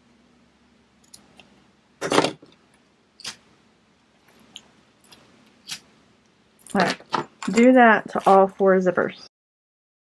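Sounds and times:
scissors snipping: 3.2s - 3.4s.

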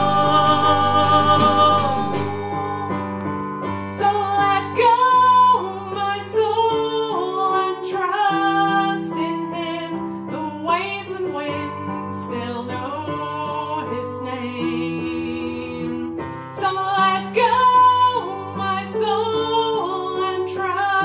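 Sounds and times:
digital piano chords: 0.0s - 8.7s
woman singing worship song: 0.0s - 21.0s.

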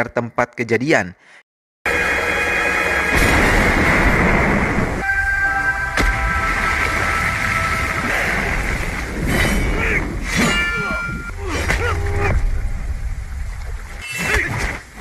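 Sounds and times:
sharp hit: 1.9s - 8.6s
film score with held tones: 1.9s - 15.0s
heavy rain: 2.6s - 10.2s.

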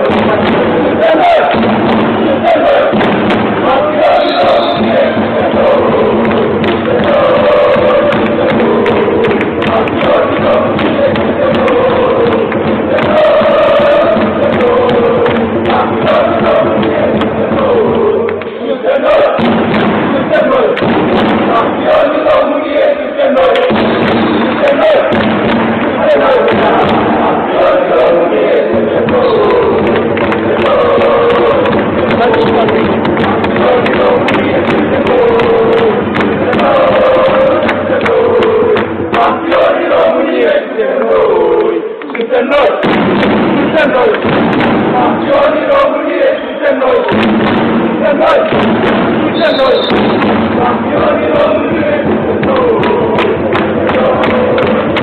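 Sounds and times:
thuds beating: 0.0s - 18.4s, 19.0s - 22.5s, 23.4s - 40.0s, 42.8s - 45.9s, 46.8s - 55.0s
crowd chanting and singing: 0.0s - 55.0s.

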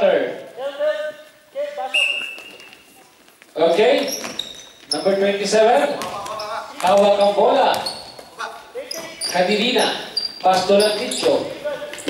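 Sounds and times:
referee's whistle: 1.9s - 2.8s
people talking: 4.9s - 12.0s.

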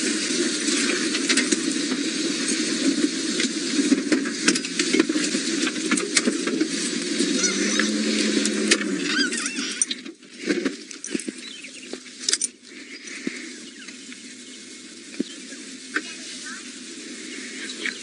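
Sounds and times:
grass and twigs brushing and snapping: 0.0s - 18.0s
vehicle engine running: 0.0s - 18.0s.

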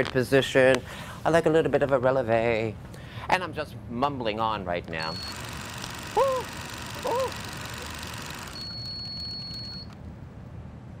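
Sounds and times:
high-pitched electronic beep: 5.0s - 5.5s, 8.5s - 9.9s.

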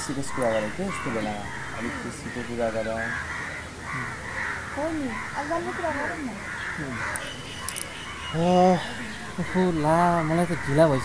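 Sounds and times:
crows cawing: 0.0s - 11.0s.

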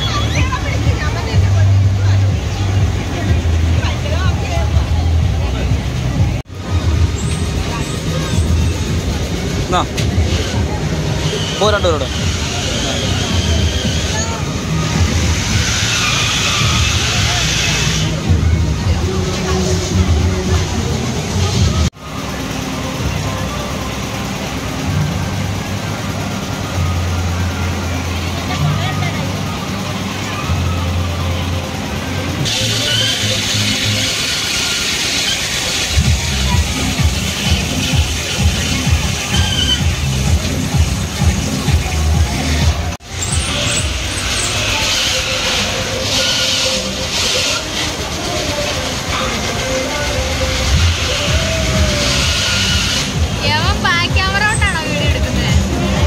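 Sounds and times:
low engine hum: 0.0s - 46.1s, 46.8s - 56.0s
fairground music: 0.0s - 56.0s
mechanical rumble of rides: 0.0s - 56.0s
people talking: 0.0s - 56.0s.

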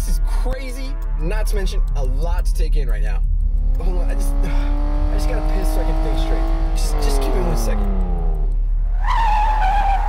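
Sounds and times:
steady low hum: 1.0s - 8.9s
high squeal from car: 9.0s - 10.0s.

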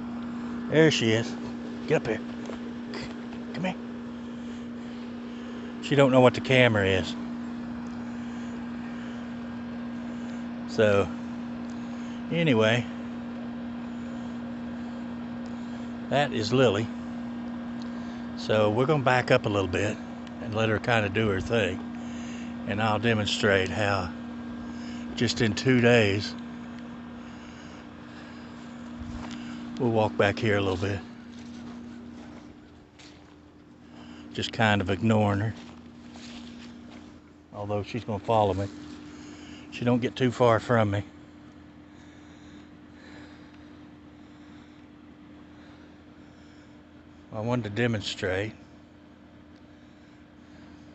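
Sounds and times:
steady low hum: 0.0s - 50.9s
footsteps on grass: 28.0s - 37.3s, 38.2s - 39.2s.

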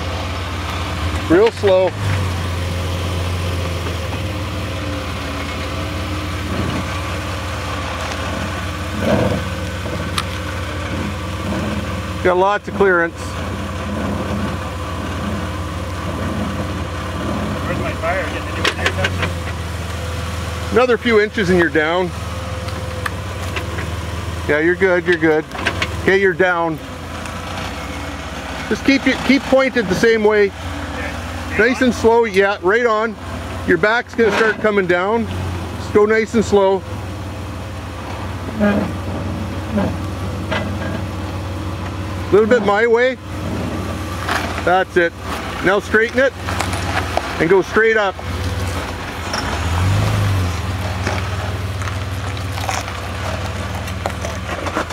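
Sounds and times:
engine idling: 0.0s - 54.9s.

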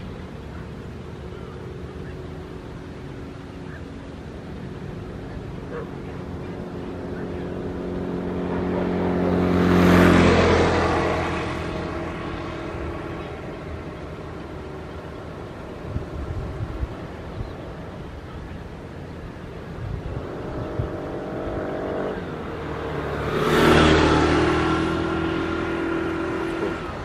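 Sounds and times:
vehicle engine passing by: 0.0s - 27.0s.

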